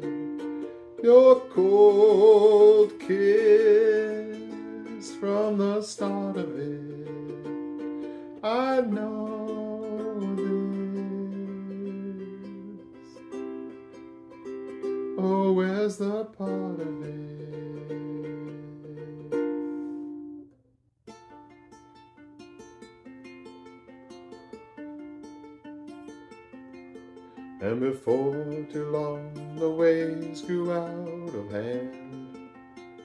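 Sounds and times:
ukulele picked notes: 0:00.0 - 0:20.5, 0:21.1 - 0:33.0
ukulele chords: 0:00.0 - 0:33.0.

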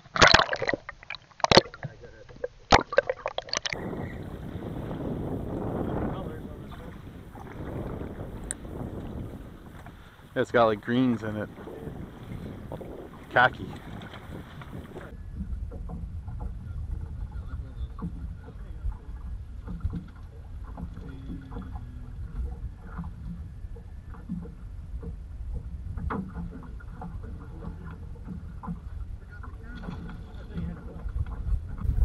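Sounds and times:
water slapping against hull: 0:00.0 - 0:32.0
wind and water rumble: 0:00.0 - 0:32.0.

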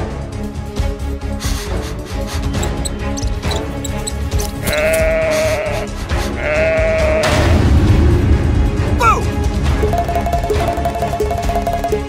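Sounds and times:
background music: 0:00.0 - 0:12.0
sheep bleating: 0:03.5 - 0:07.4.

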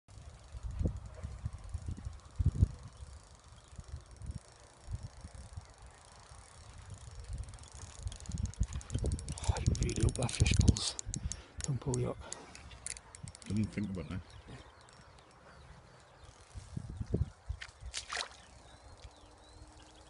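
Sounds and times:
spinning reel ticking: 0:00.1 - 0:16.6
wind and handling thumps on microphone: 0:07.4 - 0:15.3, 0:16.4 - 0:18.4.

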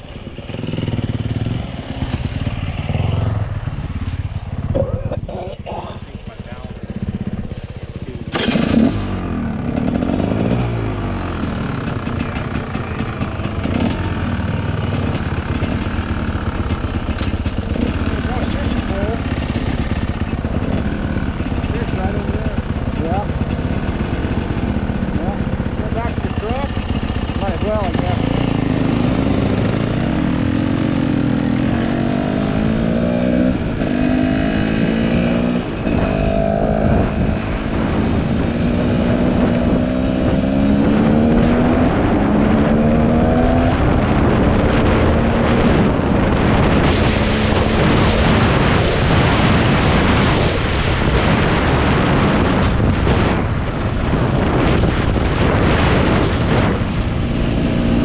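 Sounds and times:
dirt bike engines idling: 0:00.0 - 0:08.6, 0:09.5 - 0:31.9
dirt bike revving and pulling away: 0:00.0 - 0:58.0.

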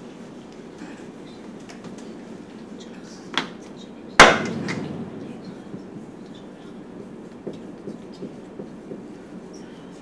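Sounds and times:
sharp knock: 0:04.2 - 0:06.3
marker writing on whiteboard: 0:05.7 - 0:10.0.

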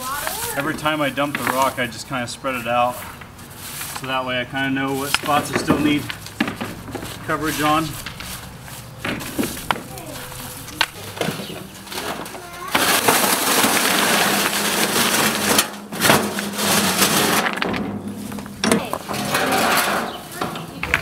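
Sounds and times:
rocks rattling and tumbling out: 0:05.0 - 0:21.0.

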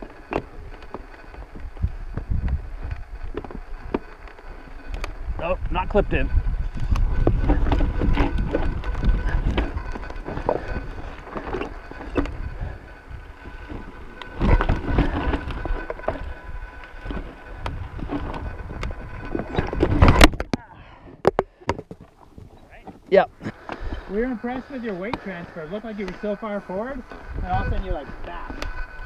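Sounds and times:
bike clicks and rattles: 0:00.0 - 0:29.0
bike tyre rumble: 0:00.0 - 0:29.0
wind on microphone: 0:00.0 - 0:29.0.

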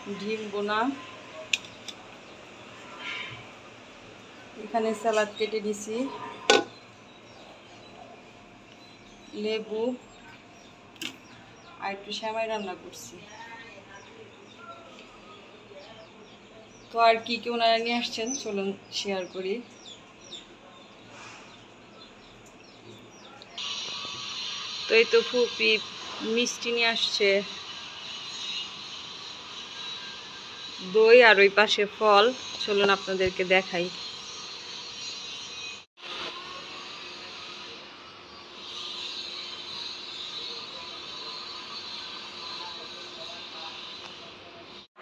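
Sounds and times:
steady hiss: 0:23.6 - 0:31.0.

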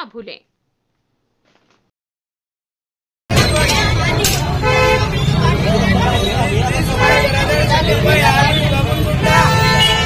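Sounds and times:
low traffic rumble: 0:03.3 - 0:10.0
people's voices: 0:03.3 - 0:10.0.

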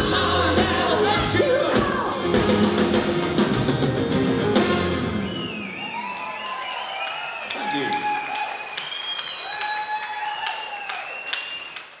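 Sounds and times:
audience applauding: 0:05.1 - 0:12.0.

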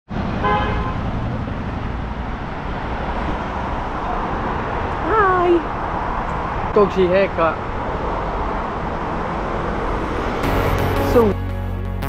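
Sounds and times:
cars driving past: 0:00.1 - 0:11.8
car horn toot: 0:00.4 - 0:01.0.

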